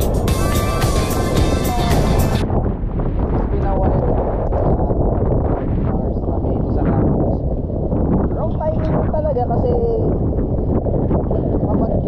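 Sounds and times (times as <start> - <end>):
strong wind buffeting microphone: 0.0 - 12.0.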